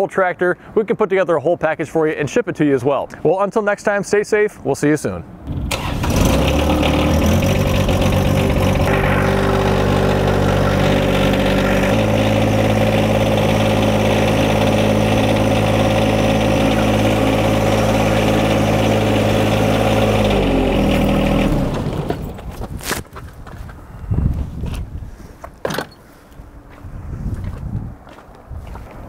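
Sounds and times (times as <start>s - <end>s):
tractor diesel engine running: 5.5s - 22.6s.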